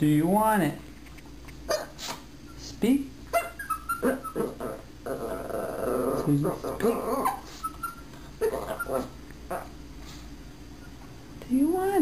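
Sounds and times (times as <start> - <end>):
puppy yipping: 1.7 - 2.1, 3.3 - 4.6, 7.1 - 9.7.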